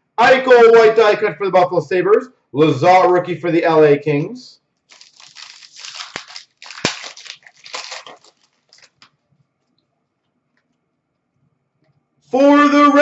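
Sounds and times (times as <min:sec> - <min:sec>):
card wrappers crinkling: 0:04.9 - 0:09.2.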